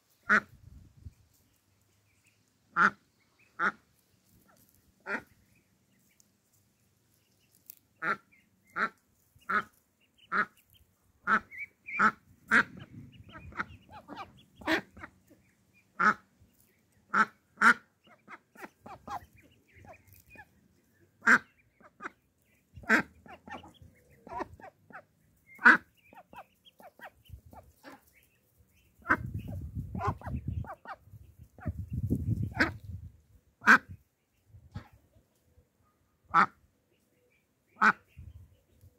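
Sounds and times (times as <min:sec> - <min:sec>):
duck quacking: 0:00.2 - 0:00.6, 0:02.7 - 0:05.6, 0:08.0 - 0:16.4, 0:17.0 - 0:28.3, 0:29.0 - 0:33.0, 0:33.6 - 0:34.0, 0:36.3 - 0:36.6, 0:37.7 - 0:38.2.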